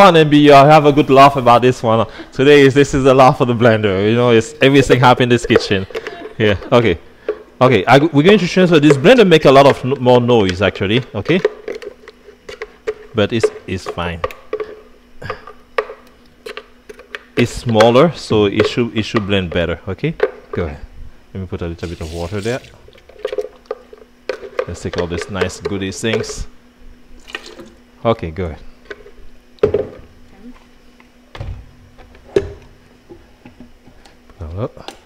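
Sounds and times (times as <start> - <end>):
faint steady hum: 0.0 - 35.0.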